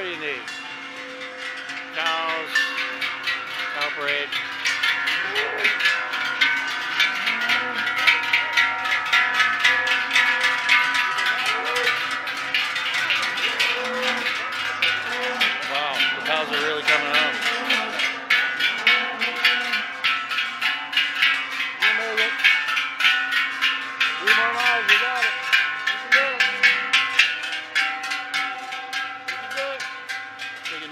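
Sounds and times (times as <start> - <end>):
cowbells clanging: 0.0 - 30.9.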